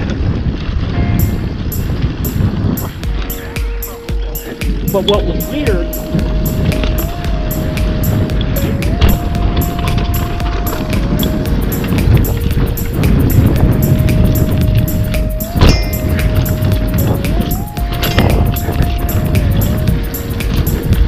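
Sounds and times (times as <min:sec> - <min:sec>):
bicycle tyre rumble on dirt: 0:00.0 - 0:04.4
wind: 0:00.0 - 0:21.0
background music with steady beat: 0:01.0 - 0:21.0.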